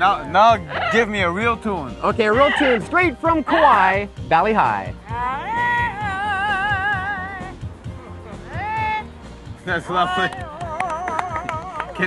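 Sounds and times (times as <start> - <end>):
parrot singing: 0.6 - 1.1, 2.3 - 2.9, 5.1 - 7.6.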